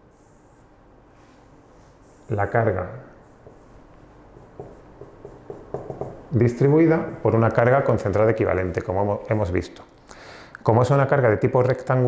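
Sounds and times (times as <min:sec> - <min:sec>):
marker drawing on whiteboard: 0:01.7 - 0:06.2.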